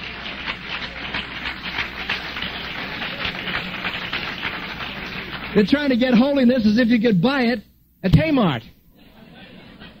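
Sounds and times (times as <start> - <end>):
crowd clapping: 0.0 - 6.9.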